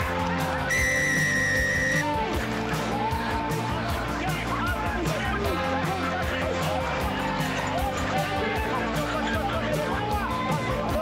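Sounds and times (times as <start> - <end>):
background music: 0.0 - 11.0
referee's whistle blast: 0.7 - 2.1.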